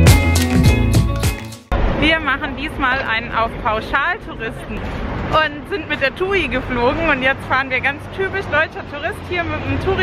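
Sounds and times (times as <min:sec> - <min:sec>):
background music: 0:00.0 - 0:01.7
woman talking: 0:02.0 - 0:10.0.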